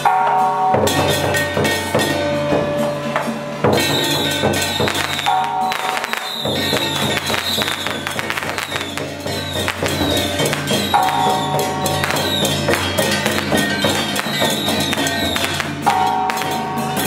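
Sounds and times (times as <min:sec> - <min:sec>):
drum cymbals and gong beat: 0:00.0 - 0:17.0
melody with held notes: 0:00.0 - 0:17.0.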